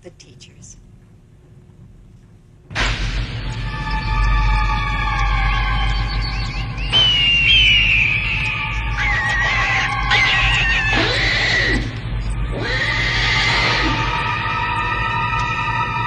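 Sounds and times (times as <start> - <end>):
eerie sustained music chords: 2.8 - 16.0
high wavering gliding cries: 3.5 - 16.0.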